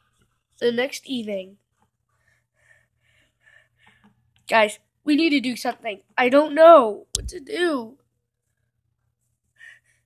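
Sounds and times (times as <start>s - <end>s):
faint breathy noises: 9.5s - 10.0s.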